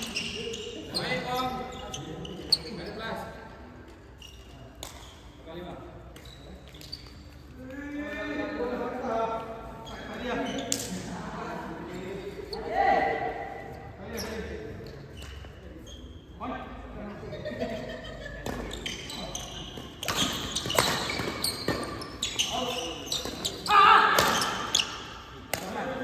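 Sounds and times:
players' voices: 15.9 - 26.0
racket hitting shuttlecock: 19.9 - 22.0.

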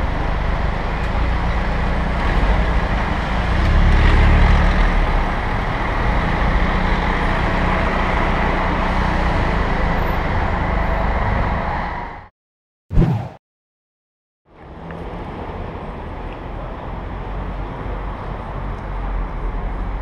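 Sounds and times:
car engines: 0.0 - 12.3, 14.5 - 20.0.

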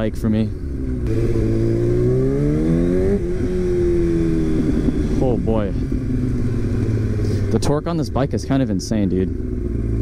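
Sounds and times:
motorcycle engine accelerating: 0.0 - 10.0.

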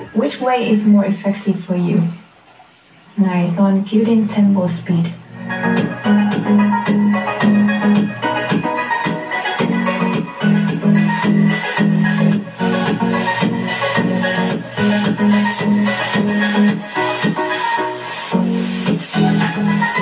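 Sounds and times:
upbeat background music: 4.0 - 20.0.

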